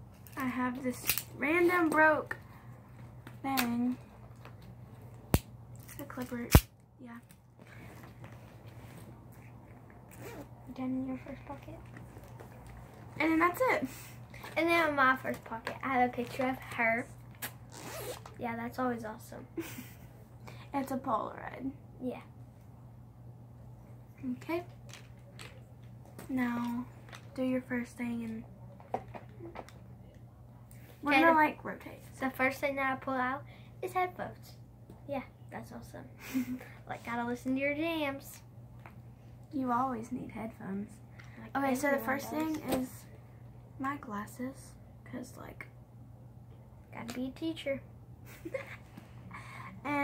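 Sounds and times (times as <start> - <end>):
steady low hum: 0.0 - 50.0
zipper being pulled: 10.1 - 10.5, 17.4 - 18.4.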